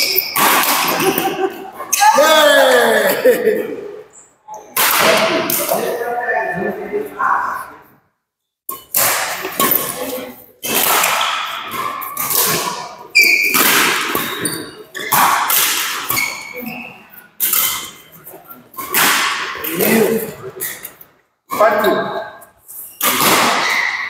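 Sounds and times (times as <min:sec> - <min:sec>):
racket hitting shuttlecock: 0:00.0 - 0:01.4, 0:04.7 - 0:05.8, 0:08.7 - 0:10.0, 0:10.6 - 0:16.5, 0:18.8 - 0:19.7, 0:23.0 - 0:24.0
shoes squeaking on court floor: 0:00.0 - 0:02.0, 0:08.7 - 0:15.4, 0:16.0 - 0:19.0, 0:20.3 - 0:21.1, 0:21.8 - 0:24.0.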